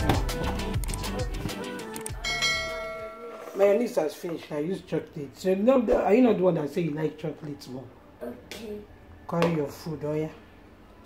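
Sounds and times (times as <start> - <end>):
background music with a beat: 0.0 - 3.2
bright bell chime: 2.2 - 3.5.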